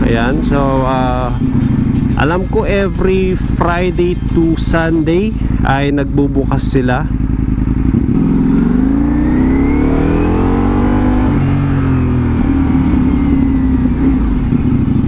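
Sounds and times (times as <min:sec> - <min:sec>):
motorcycle engine accelerating: 0:00.0 - 0:15.0.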